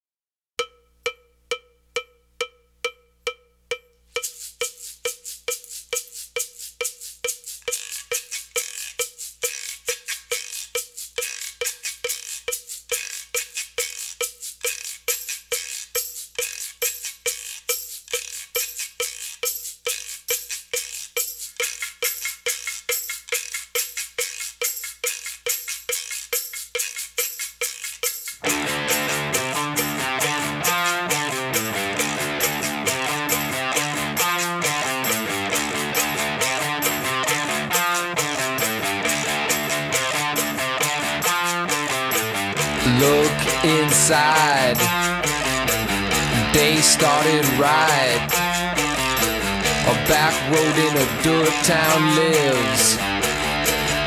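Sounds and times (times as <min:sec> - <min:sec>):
bright percussion strokes: 0:00.7 - 0:54.0.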